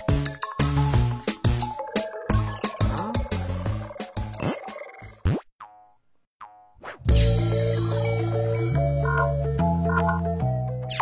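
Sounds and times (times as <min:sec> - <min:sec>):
cartoon music with percussive hits: 0:00.0 - 0:11.0.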